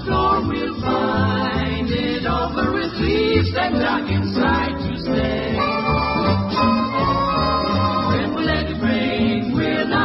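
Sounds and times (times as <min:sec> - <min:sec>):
vocal group singing harmony: 0:00.0 - 0:10.0
band accompaniment: 0:03.6 - 0:09.8.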